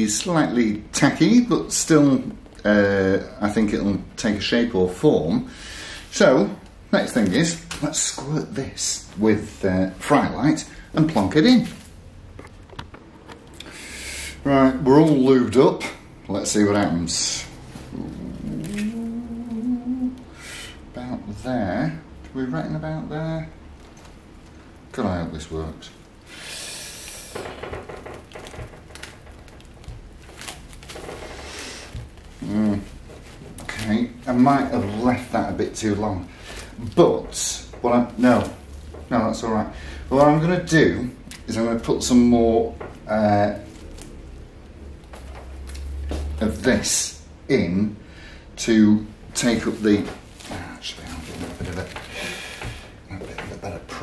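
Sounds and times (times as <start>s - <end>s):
cling film crinkling: 16.6s - 20.2s, 23.7s - 42.3s, 42.9s - 46.8s, 49.3s - 54.0s.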